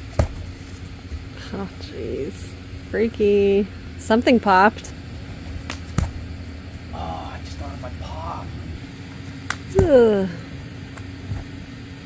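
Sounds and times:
low background hum: 0.0 - 12.0
thud of landing on grass: 0.1 - 0.9, 5.6 - 6.2.

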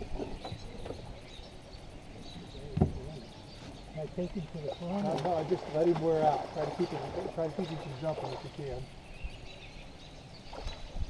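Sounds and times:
thump in metal boat: 2.7 - 3.2.

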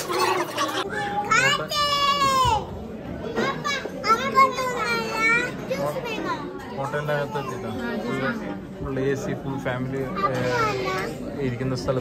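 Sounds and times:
voices in room: 0.0 - 12.0.

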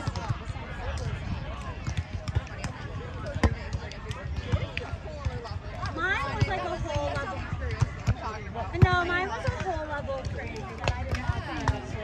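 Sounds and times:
volleyball hit by hands: 0.0 - 12.0.

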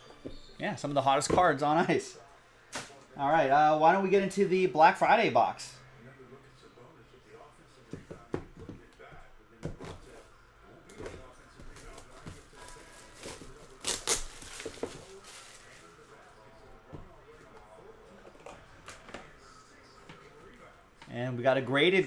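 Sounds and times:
plastic wrap crackling: 11.7 - 16.3.

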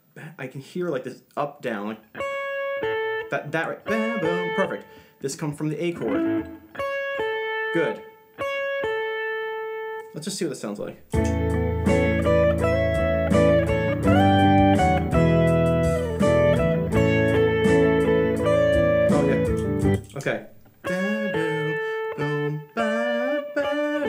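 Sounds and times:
electric guitar playing: 2.1 - 5.1, 5.8 - 10.1, 11.0 - 24.0
backing track: 2.2 - 5.1, 5.7 - 9.7, 11.0 - 23.9.

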